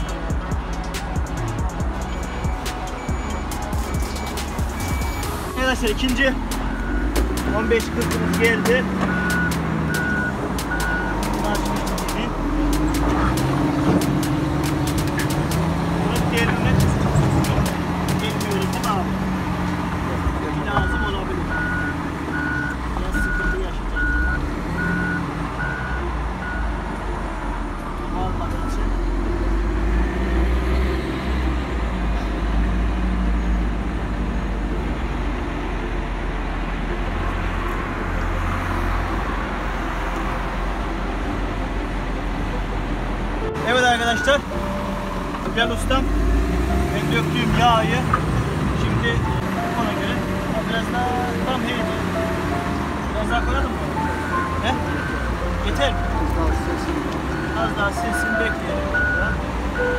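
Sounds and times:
heavy machine engine rumbling: 0.0 - 59.9
reversing alarm beeping: 2.0 - 6.0, 6.6 - 7.2, 9.0 - 11.6, 20.8 - 26.8, 53.4 - 55.9, 57.3 - 59.9
sharp clicks and knocks: 6.5 - 19.0.

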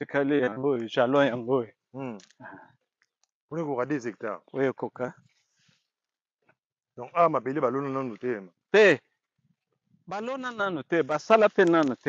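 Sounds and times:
man speaking: 0.0 - 2.3, 3.5 - 5.2, 7.0 - 9.0, 10.1 - 12.0.

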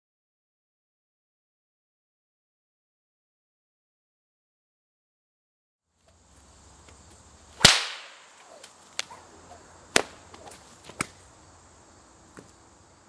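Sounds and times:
bullwhip cracking: 7.6 - 11.2.

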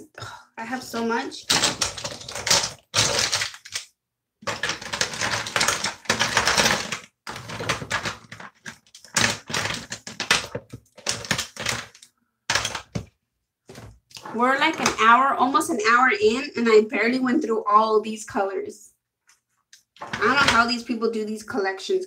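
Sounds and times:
small plastic items clattering: 1.4 - 15.1, 19.8 - 20.8.

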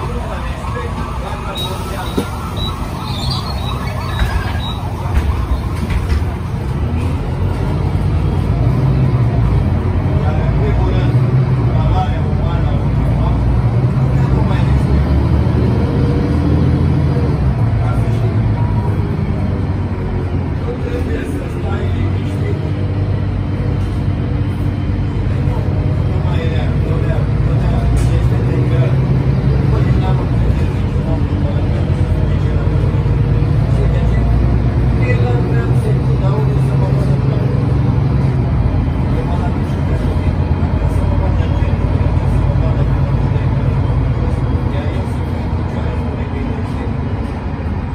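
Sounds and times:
bus engine drone: 0.0 - 47.9
road and tyre noise: 0.0 - 47.9.

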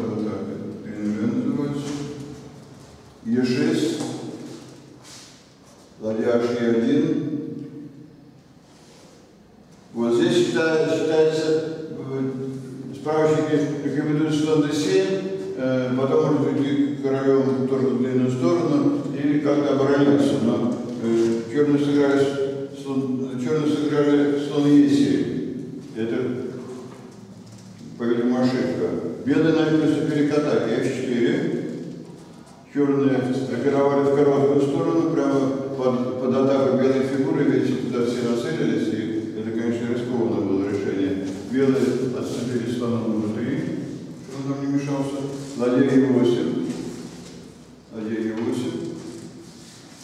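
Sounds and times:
man speaking hesitantly: 0.0 - 5.0, 9.9 - 49.4
soft rustle: 46.6 - 50.0.

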